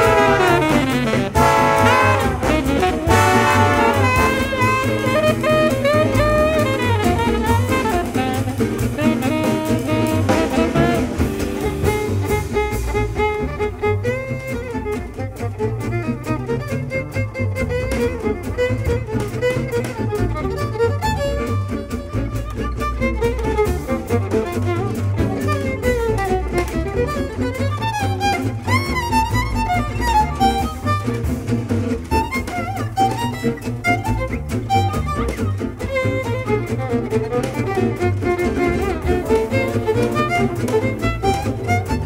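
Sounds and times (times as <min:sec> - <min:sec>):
double bass: 0:00.0 - 0:42.0
drums: 0:00.0 - 0:42.0
jazz big band horn section: 0:00.0 - 0:42.0
rhythm guitars: 0:00.0 - 0:42.0.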